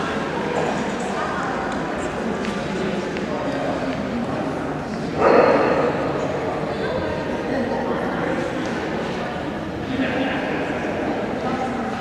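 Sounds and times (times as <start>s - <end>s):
murmur of voices: 0.0s - 12.0s
dog barking: 5.2s - 5.9s.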